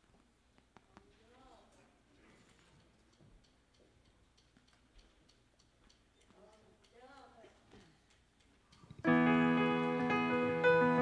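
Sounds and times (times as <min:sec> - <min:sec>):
soft high ticks: 0:02.6 - 0:09.1.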